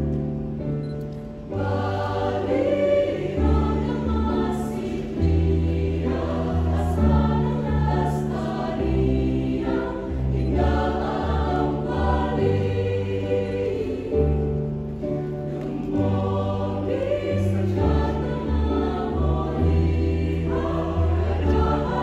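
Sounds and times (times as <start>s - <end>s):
mixed choir singing: 1.5s - 22.0s.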